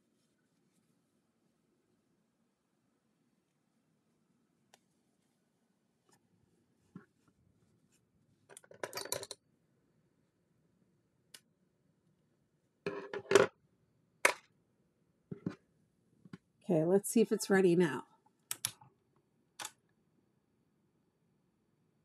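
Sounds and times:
objects scraping and rustling on desk: 12.9 - 13.5, 15.3 - 15.6.

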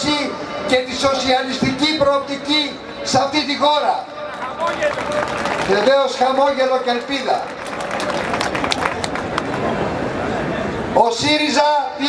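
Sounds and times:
crowd applauding: 4.1 - 10.4.

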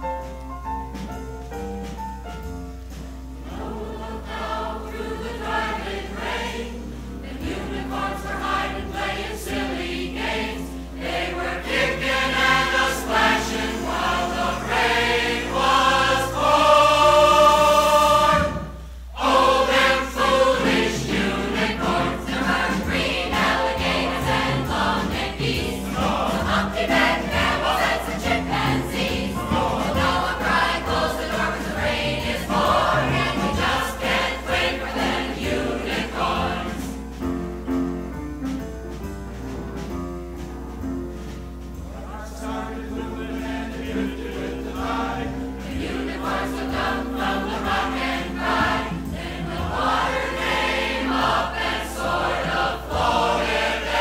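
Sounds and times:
chorus singing with accompaniment: 2.9 - 37.8, 39.8 - 54.0.

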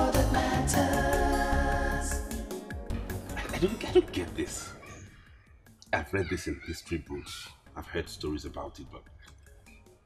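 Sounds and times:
high animal cries: 4.5 - 7.6.

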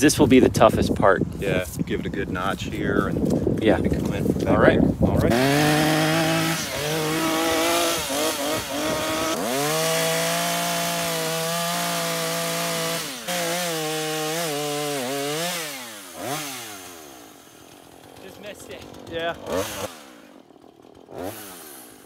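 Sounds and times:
chainsaw cutting wood: 5.2 - 22.0.

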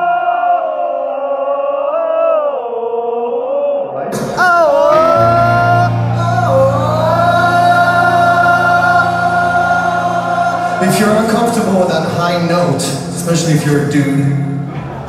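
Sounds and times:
crowd singing long notes: 0.0 - 13.1
man singing over loudspeakers: 0.0 - 14.7.

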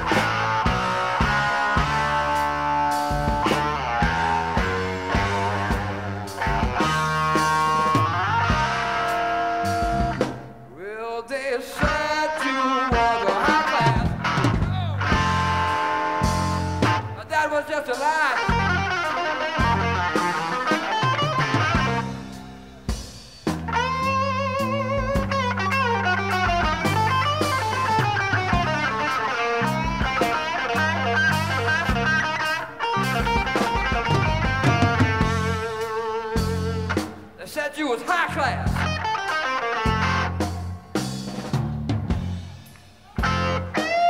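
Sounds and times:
bass guitar: 0.0 - 10.9, 11.8 - 44.0
electric guitar lead: 0.0 - 10.9, 11.8 - 44.0
drums: 0.0 - 44.0.

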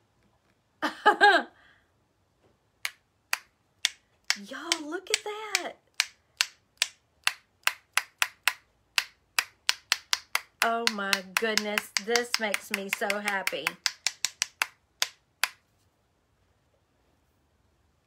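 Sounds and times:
stick tapping paintbrush: 2.8 - 15.6.

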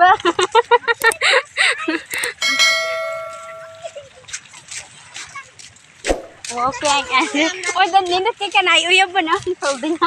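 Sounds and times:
bell-like chime: 2.2 - 4.0.

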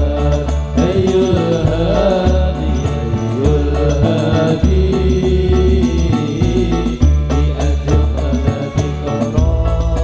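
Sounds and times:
chanted melody: 0.0 - 10.0
hand drum patterns: 0.0 - 10.0.

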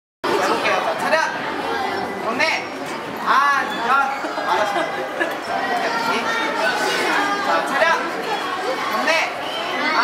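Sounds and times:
indistinct chatter of voices: 0.2 - 10.0.

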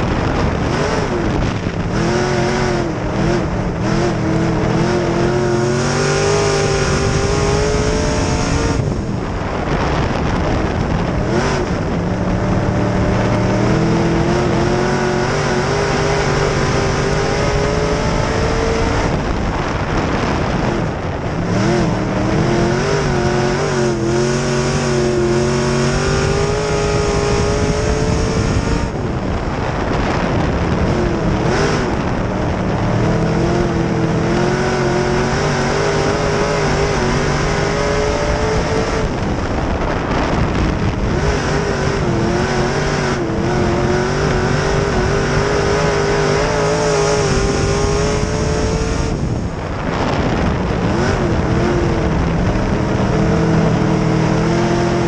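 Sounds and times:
race car engine: 0.0 - 55.0.

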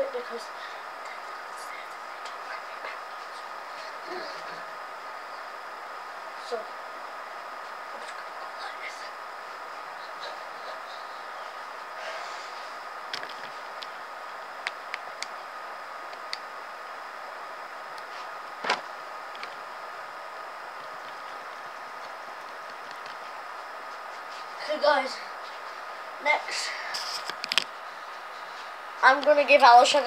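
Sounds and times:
faint constant tone: 0.0 - 30.0.

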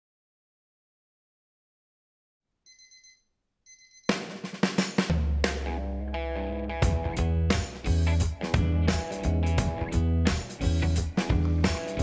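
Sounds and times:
phone alarm beeps: 2.7 - 4.2.

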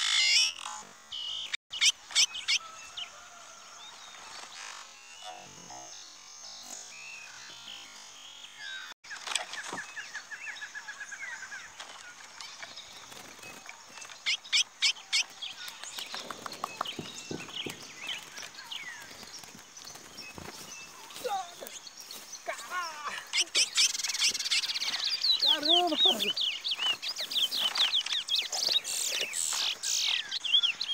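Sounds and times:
finches singing whistled notes: 9.8 - 30.9
sharp bird clicks: 27.6 - 30.4.

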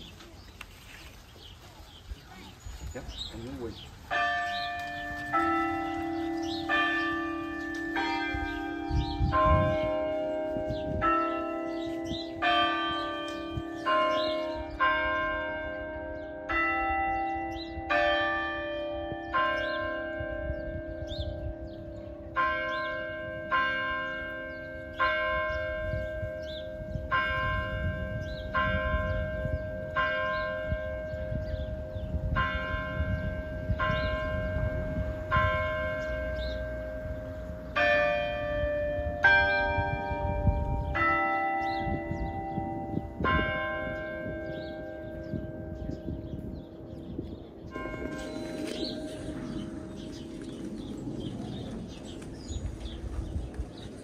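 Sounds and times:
church bells striking a tune: 2.9 - 54.0.

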